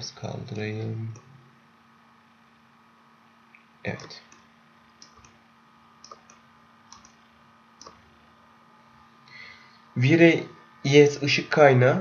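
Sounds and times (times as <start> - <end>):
computer mouse clicks: 3.5 - 5.4, 6.0 - 7.2, 7.8 - 8.0.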